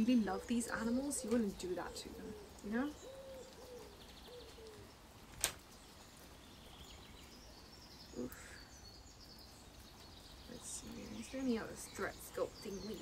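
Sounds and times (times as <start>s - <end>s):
dove cooing: 0.0s - 4.9s.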